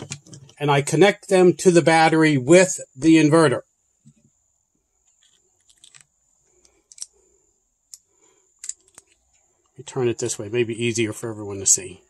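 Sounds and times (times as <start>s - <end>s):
small metal clicks: 5.1s - 7.2s, 7.9s - 9.8s.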